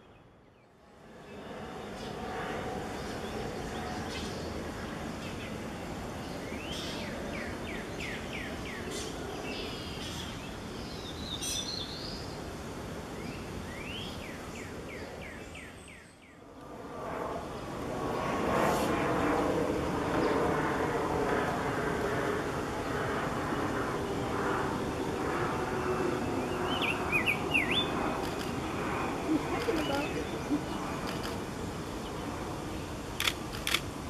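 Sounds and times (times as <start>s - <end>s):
steady background hum: 0.0s - 34.0s
songbird rising chirps: 26.2s - 31.3s
bird singing warbled phrase: 26.6s - 27.9s.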